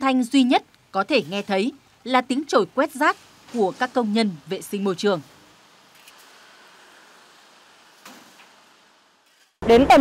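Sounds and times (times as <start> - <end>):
broom brushing pavement: 1.1 - 5.5.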